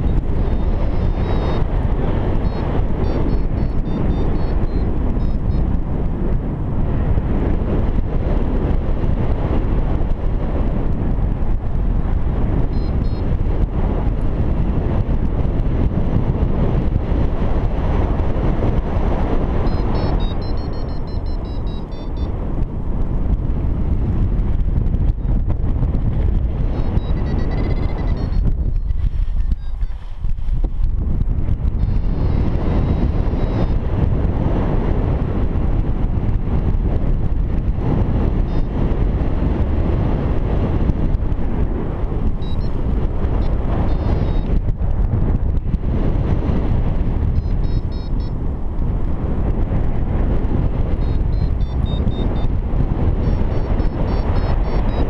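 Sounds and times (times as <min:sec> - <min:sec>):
high electronic beeping: 0:00.0 - 0:01.7, 0:02.4 - 0:05.7, 0:12.7 - 0:13.3, 0:19.6 - 0:22.3, 0:26.8 - 0:29.9, 0:31.8 - 0:33.8, 0:42.4 - 0:42.8, 0:43.9 - 0:44.5, 0:47.4 - 0:48.3, 0:51.0 - 0:52.5, 0:53.2 - 0:55.0
wind rushing over microphone: 0:00.0 - 0:55.0.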